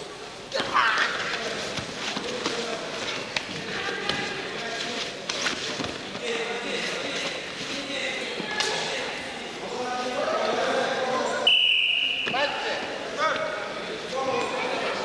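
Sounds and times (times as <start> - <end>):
bodies shuffling on a mat: 1.3 - 8.6.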